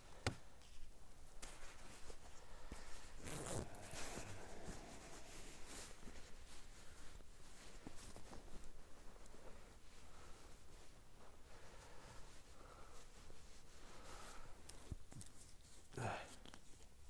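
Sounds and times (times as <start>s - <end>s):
clothing rustling: 0.0s - 17.0s.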